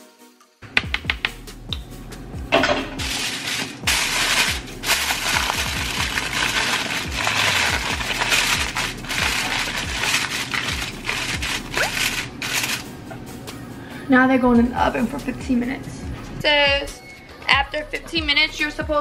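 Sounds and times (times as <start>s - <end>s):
background music: 0.0s - 19.0s
aluminium foil crinkling: 3.0s - 12.9s.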